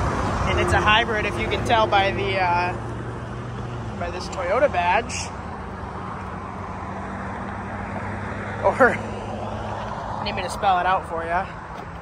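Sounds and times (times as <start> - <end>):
vehicle traffic hum: 0.0 - 12.0.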